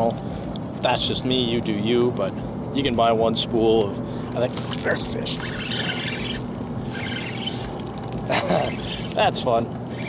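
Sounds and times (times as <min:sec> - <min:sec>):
steady low hum: 0:00.0 - 0:10.0
spinning reel being cranked: 0:04.5 - 0:10.0.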